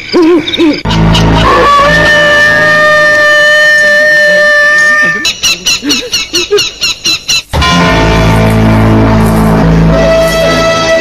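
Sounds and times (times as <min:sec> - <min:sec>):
low sustained music drone: 0:00.9 - 0:04.9, 0:07.6 - 0:11.0.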